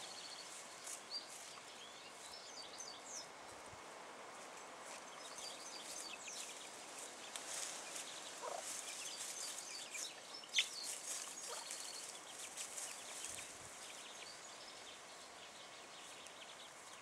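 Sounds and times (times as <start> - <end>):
chicks peeping: 5.8 - 13.5
hen clucking: 8.4 - 8.7.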